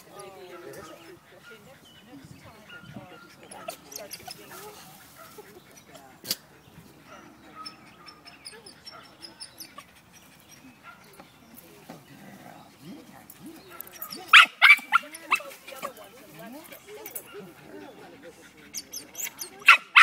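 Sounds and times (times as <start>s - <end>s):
dog yelping: 14.0s - 15.5s, 18.7s - 20.0s.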